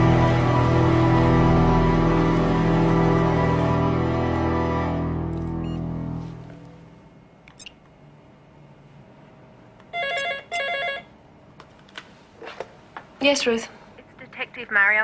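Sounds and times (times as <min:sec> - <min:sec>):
background music: 0:00.0 - 0:06.7
desk telephone ringing: 0:09.9 - 0:11.1.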